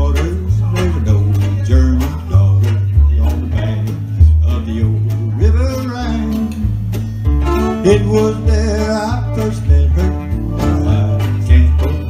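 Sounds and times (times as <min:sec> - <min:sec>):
acoustic guitars strumming: 0:00.0 - 0:12.0
alternating bass line: 0:00.0 - 0:12.0
fiddle playing: 0:07.0 - 0:12.0.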